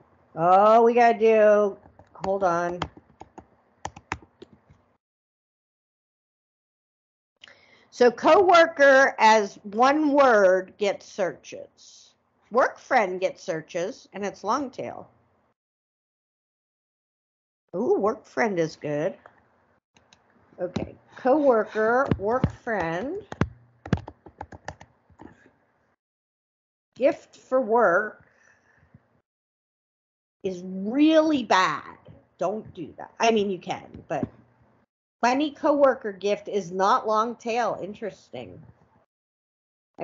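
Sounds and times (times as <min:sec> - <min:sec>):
typing on computer keyboard: 0:02.7 - 0:04.5, 0:22.8 - 0:24.9.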